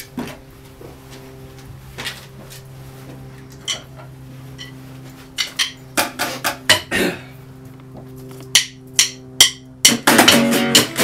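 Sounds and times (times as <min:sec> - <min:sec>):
held guitar chord: 0:03.3 - 0:11.0
loud guitar strum: 0:09.0 - 0:11.0.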